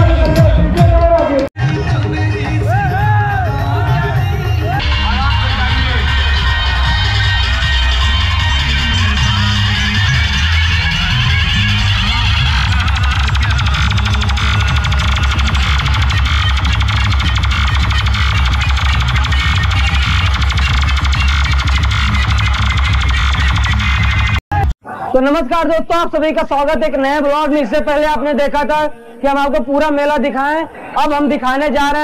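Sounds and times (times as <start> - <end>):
loud music with heavy bass: 0.0 - 24.7.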